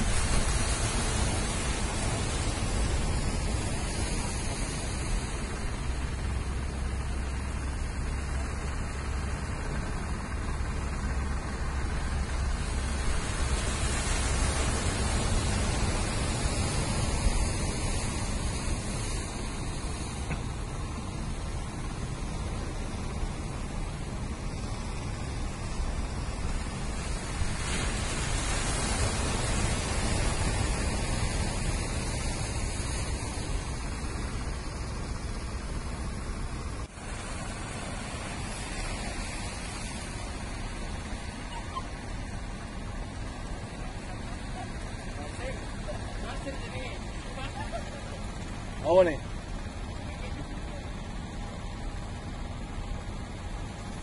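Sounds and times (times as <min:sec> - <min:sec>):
sea surf breaking: 0:00.0 - 0:54.0.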